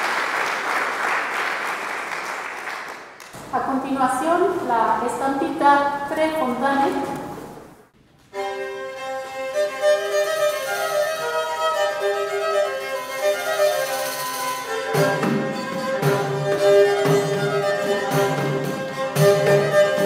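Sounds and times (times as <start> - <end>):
bowed string melody: 8.4 - 20.0.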